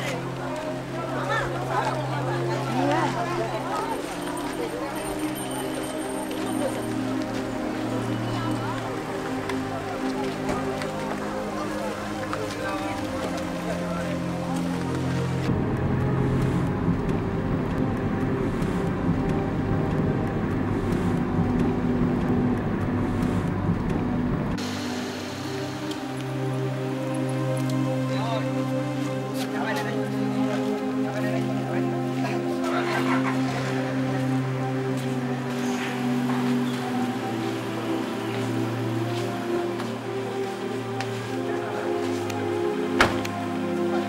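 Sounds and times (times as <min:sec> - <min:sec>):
crowd murmur: 0:00.0 - 0:44.0
music playing: 0:00.0 - 0:44.0.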